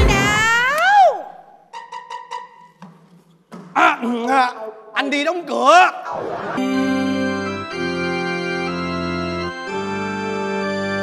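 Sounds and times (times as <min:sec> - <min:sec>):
short wood-block tones: 0:01.7 - 0:03.1.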